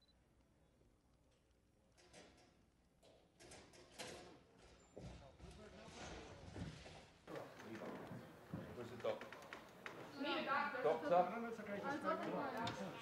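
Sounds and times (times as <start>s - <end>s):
muffled voices: 7.3s - 13.0s.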